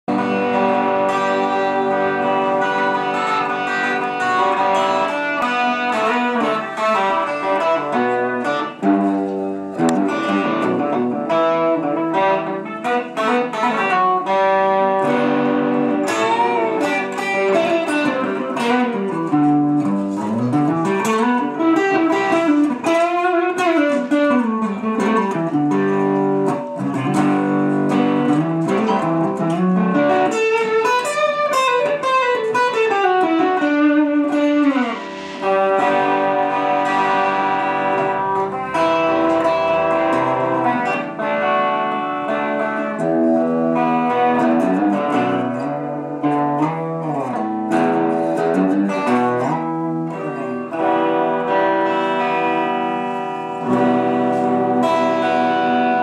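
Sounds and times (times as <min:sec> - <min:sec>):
electric guitar with sliding notes: 0:00.0 - 0:56.0.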